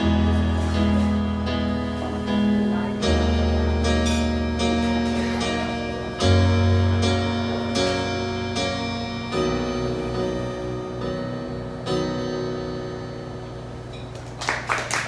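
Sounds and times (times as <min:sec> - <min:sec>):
keyboard piano chords: 0:00.0 - 0:14.4.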